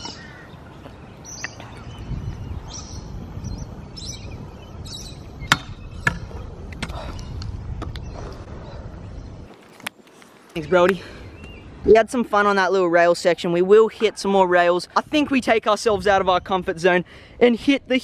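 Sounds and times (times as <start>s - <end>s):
birds calling: 0.0s - 12.6s.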